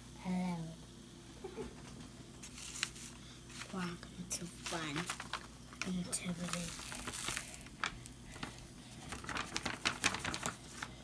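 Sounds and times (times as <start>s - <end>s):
paper rustling: 2.4s - 11.0s.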